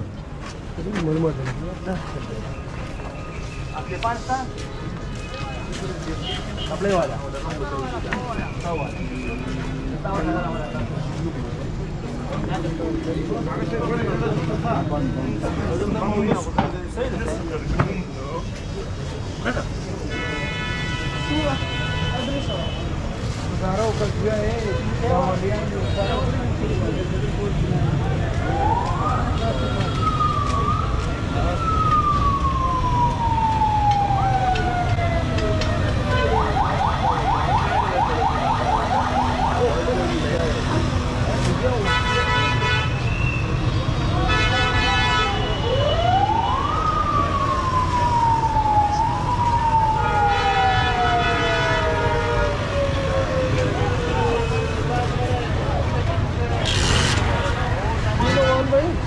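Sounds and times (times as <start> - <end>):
ambulance siren wailing: 28.3 - 41.9, 45.2 - 55.5.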